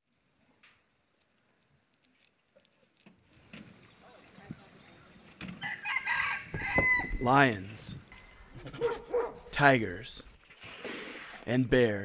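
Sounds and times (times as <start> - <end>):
rooster crowing: 5.6 - 7.2.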